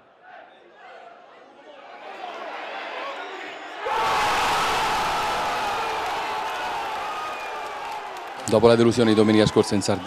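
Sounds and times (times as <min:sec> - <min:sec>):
stadium crowd cheering: 0:01.8 - 0:10.0.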